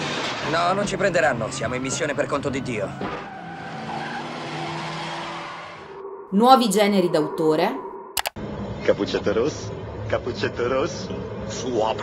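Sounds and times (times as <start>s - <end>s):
car tyres screeching: 0.0s - 6.0s.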